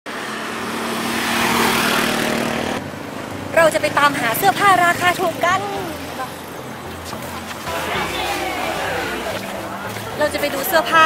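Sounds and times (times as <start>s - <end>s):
vehicle passing close by: 0.1s - 9.8s.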